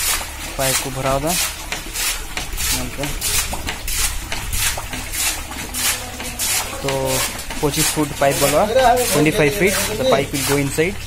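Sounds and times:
muddy water gushing in spurts: 0.0s - 11.0s.

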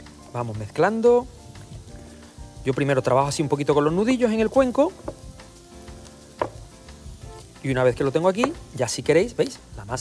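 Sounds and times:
onions sizzling in a pan: 0.0s - 10.0s
knock on glass bowl: 6.4s - 6.7s, 8.4s - 8.7s.

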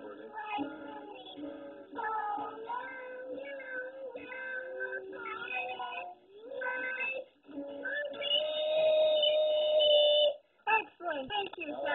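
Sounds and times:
person singing a tune: 0.0s - 10.4s.

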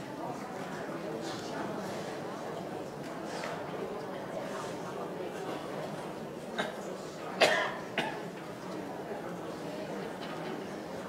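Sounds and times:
elderly man coughing: 7.4s - 8.2s.

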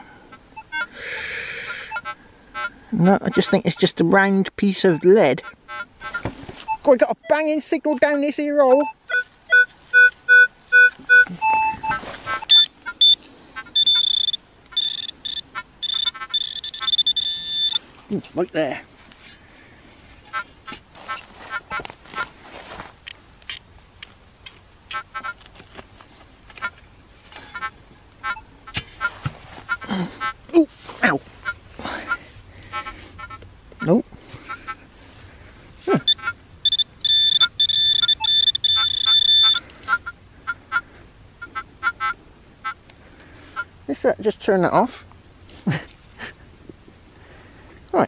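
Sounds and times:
rapid electronic beeps: 8.0s - 17.8s, 36.0s - 39.6s
steady high electronic tone: 8.7s - 17.8s, 36.0s - 39.6s
hands scraping dry soil: 9.2s - 12.6s, 28.7s - 33.1s.

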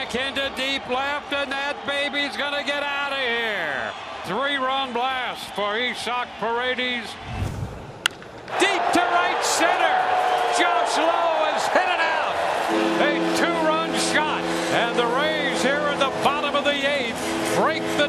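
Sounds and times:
stadium crowd cheering: 0.0s - 18.0s
bat cracking on ball: 8.0s - 8.6s
held musical chord: 12.4s - 18.0s.

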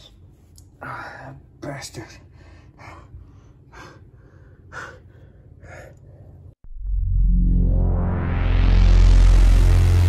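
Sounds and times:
person gasping breaths: 2.3s - 6.5s.

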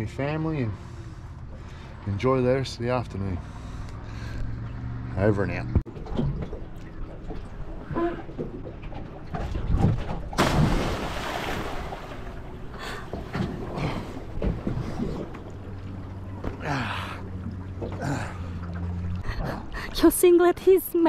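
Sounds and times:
big splash into water: 9.8s - 12.5s.

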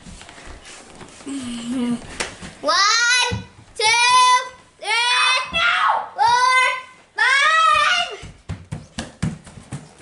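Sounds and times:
bare feet running on hardwood: 7.6s - 10.0s.

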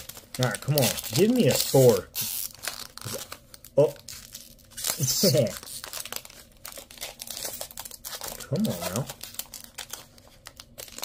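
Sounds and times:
foil wrapper crinkling and tearing: 0.0s - 11.0s.

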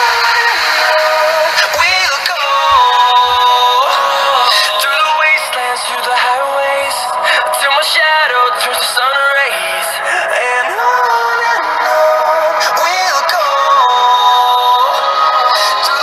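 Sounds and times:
pop song through phone speaker: 0.0s - 16.0s.

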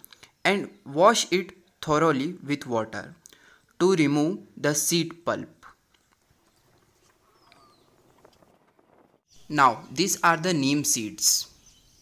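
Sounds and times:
high falling chirp: 5.8s - 12.0s.

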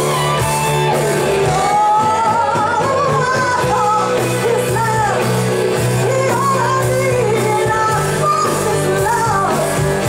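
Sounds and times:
live rock band playing: 0.0s - 10.0s
woman singing: 1.3s - 10.0s.

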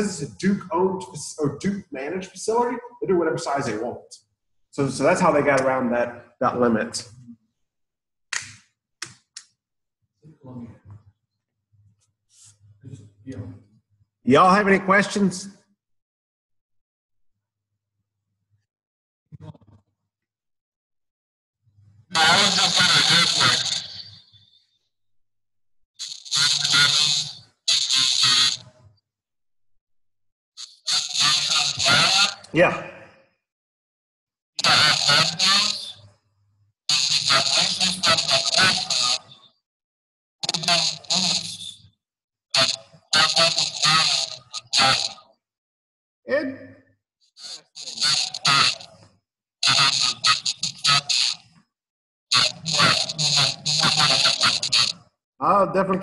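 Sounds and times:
garbled man's voice on video call: 0.0s - 7.4s, 14.2s - 15.7s, 22.1s - 24.1s, 26.0s - 28.7s, 30.6s - 33.2s, 34.6s - 36.0s, 36.9s - 39.4s, 40.4s - 41.7s, 42.6s - 45.2s, 46.3s - 46.8s, 47.4s - 49.0s, 49.6s - 51.4s, 52.4s - 56.0s.

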